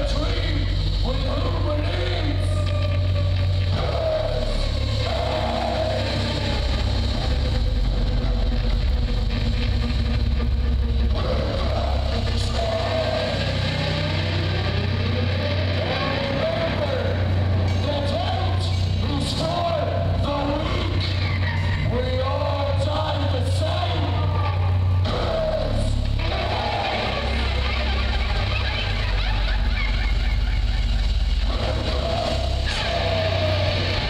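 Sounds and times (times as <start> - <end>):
heavy metal band playing: 0.0 - 34.0.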